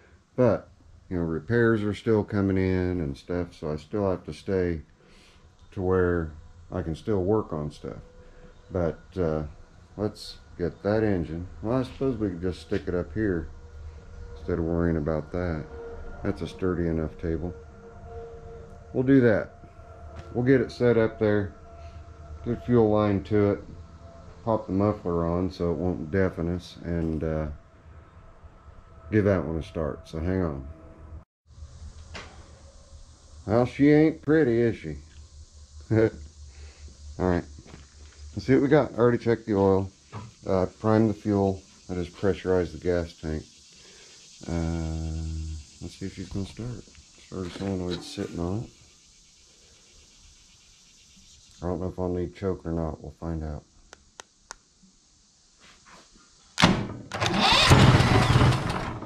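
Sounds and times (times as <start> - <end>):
shop room noise: 5.1 - 30.7, 45.9 - 48.7, 55.6 - 59.0
engine cranking on starter: 56.6 - 59.0
engine running briefly: 57.1 - 59.0.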